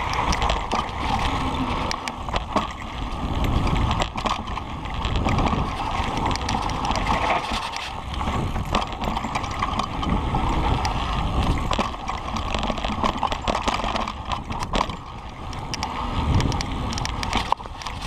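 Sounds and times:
bike clicks and rattles: 0:00.0 - 0:18.0
bike tyres rolling on dirt trail: 0:00.0 - 0:18.0.

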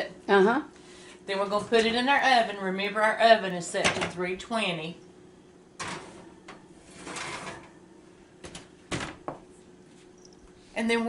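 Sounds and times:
oven door shutting: 0:05.8 - 0:07.8
oven rack sliding with scrape: 0:05.8 - 0:07.8.

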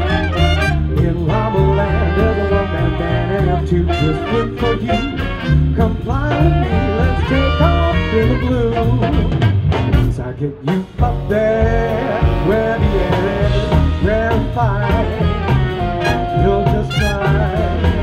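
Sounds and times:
swing band playing: 0:00.0 - 0:18.0.

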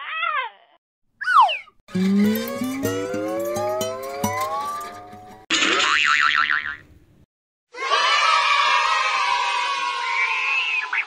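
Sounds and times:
warbling wobbling tone: 0:01.3 - 0:05.4.

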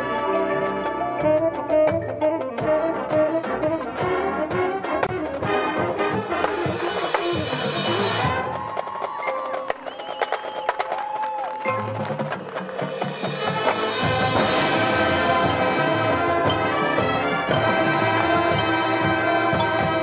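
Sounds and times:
brass band playing: 0:00.0 - 0:08.9, 0:11.7 - 0:20.0
drum strokes: 0:02.6 - 0:20.0.

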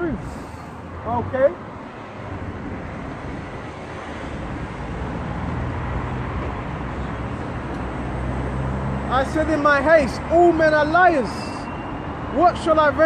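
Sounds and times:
street traffic: 0:00.0 - 0:13.0.

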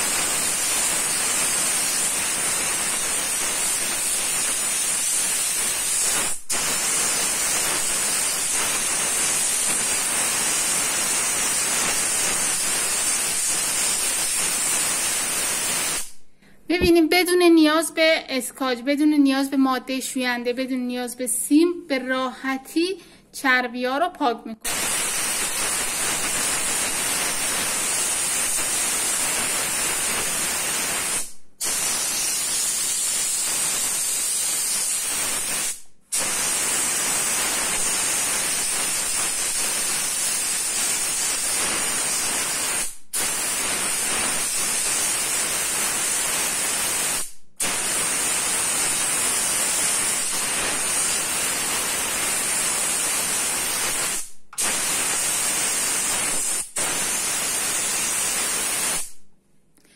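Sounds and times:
steam cleaner hissing: 0:00.0 - 0:16.2, 0:24.7 - 0:59.2.

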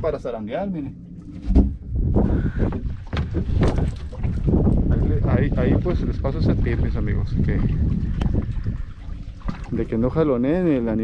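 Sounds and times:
wind buffeting microphone: 0:00.0 - 0:11.0
knocks against boat hull: 0:02.8 - 0:04.0.

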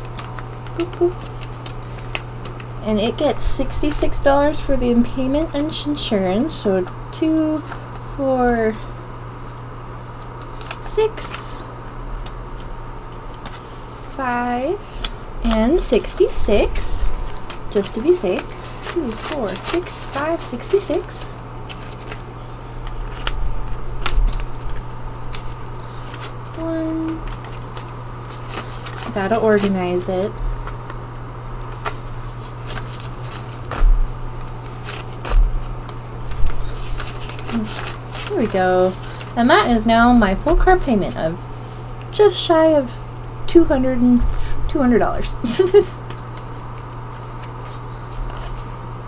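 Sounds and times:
paper bills clicking: 0:00.0 - 0:02.8, 0:10.2 - 0:11.4, 0:14.2 - 0:31.0, 0:31.6 - 0:40.8, 0:45.4 - 0:48.8
low rumble and hum: 0:00.0 - 0:49.0.

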